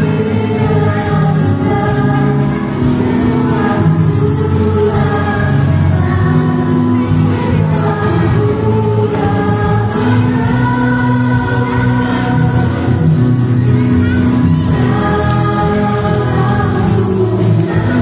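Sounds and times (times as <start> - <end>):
group singing christian song: 0.0 - 18.0.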